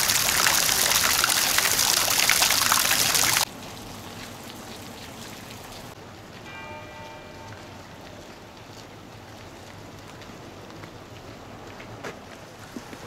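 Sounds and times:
fountain water splashing: 0.0s - 13.0s.

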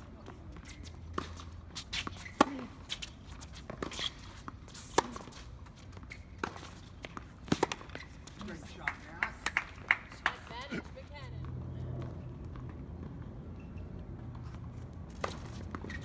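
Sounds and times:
racket hitting tennis ball: 1.1s - 5.5s, 6.4s - 8.4s
tennis ball bouncing: 1.1s - 8.8s.

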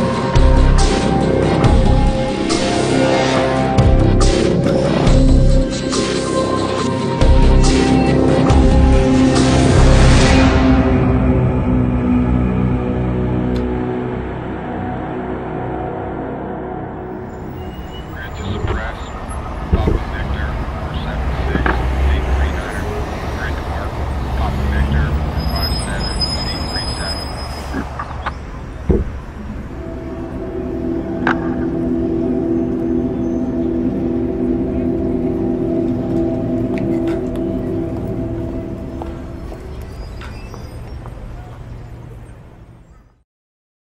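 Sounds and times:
sustained music tones: 0.0s - 42.3s
steady low rumble: 18.2s - 25.2s, 27.8s - 40.0s.

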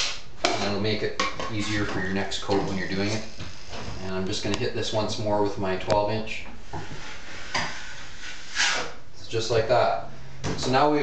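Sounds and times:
taping knife scraping compound: 6.9s - 9.0s.

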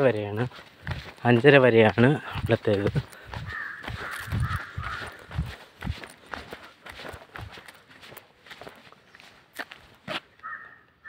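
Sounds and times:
footsteps on paved road: 0.0s - 11.0s
crow cawing: 2.9s - 5.6s, 10.4s - 11.0s.

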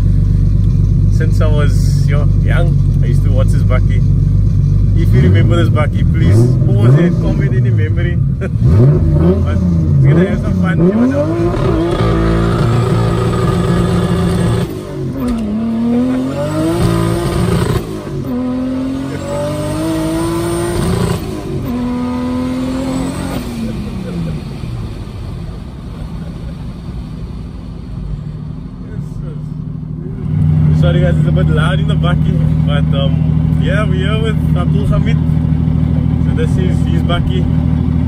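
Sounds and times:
turbocharged engine revving: 0.0s - 28.1s, 29.0s - 38.0s.

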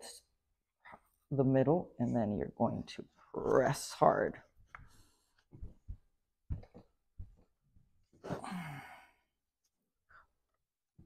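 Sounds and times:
person sighing: 8.2s - 9.3s.

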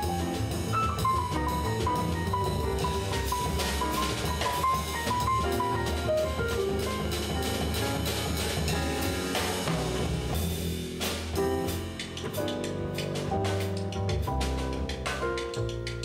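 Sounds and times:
double bass: 0.0s - 16.0s
drum kit: 0.0s - 16.0s
grand piano: 0.0s - 16.0s.

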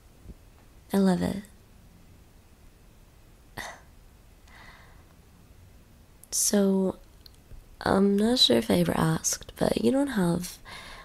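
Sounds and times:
woman's breathy intake of breath: 4.5s - 5.1s, 10.7s - 11.0s.

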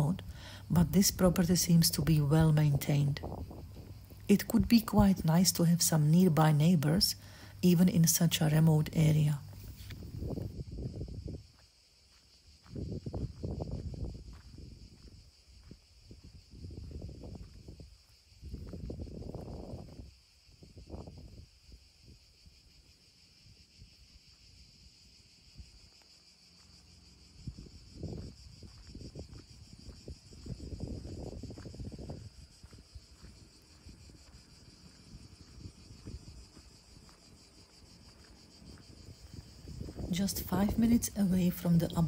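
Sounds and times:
insects chirring: 0.0s - 42.0s.

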